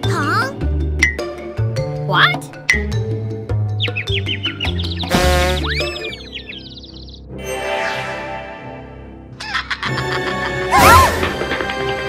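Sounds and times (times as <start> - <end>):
cartoon music: 5.0 - 6.7.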